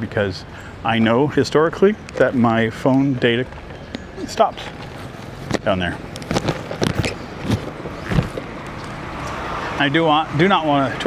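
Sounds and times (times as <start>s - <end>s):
passing street traffic: 0.0s - 11.0s.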